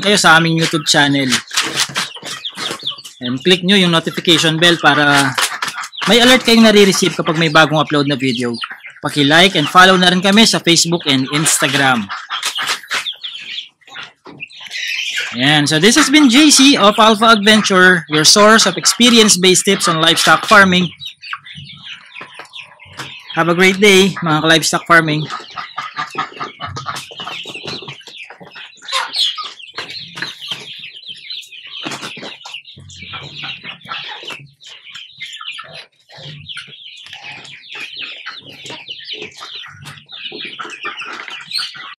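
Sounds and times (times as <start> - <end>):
beaks pecking on plastic floor: 0.0 - 42.0
hens chirping and clucking: 0.0 - 42.0.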